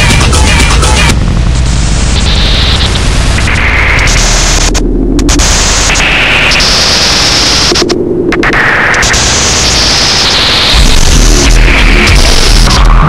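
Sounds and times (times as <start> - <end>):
low drone: 0.0 - 8.6
harsh static noise music: 0.0 - 13.0.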